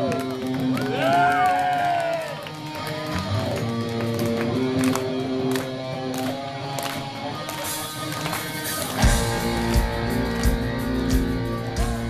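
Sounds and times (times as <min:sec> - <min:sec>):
electric guitar held notes: 0:00.0 - 0:12.0.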